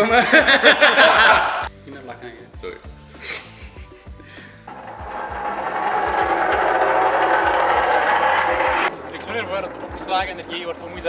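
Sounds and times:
pallet jack wheels rattling on asphalt: 4.7s - 11.0s.

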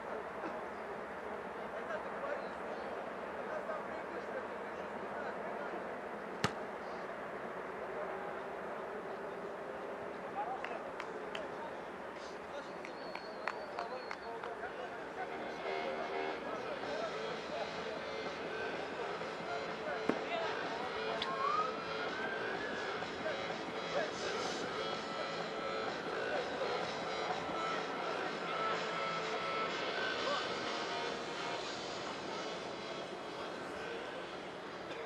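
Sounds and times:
steady rushing background noise: 21.9s - 35.0s.

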